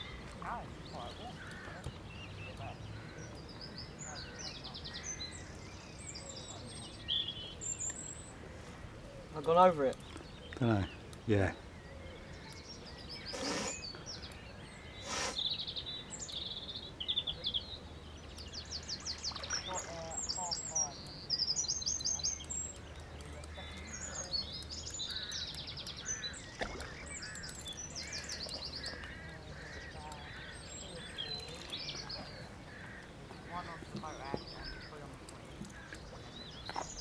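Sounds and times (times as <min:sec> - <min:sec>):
songbirds chirping and trilling: 0:00.0 - 0:37.0.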